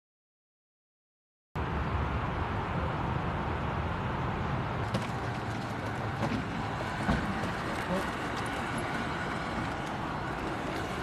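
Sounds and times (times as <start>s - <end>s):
outdoor background noise: 1.6s - 11.0s.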